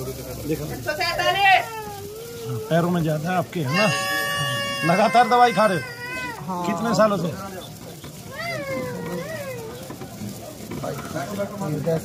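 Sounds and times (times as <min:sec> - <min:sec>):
high-pitched wavering cry: 0:03.6 - 0:06.5.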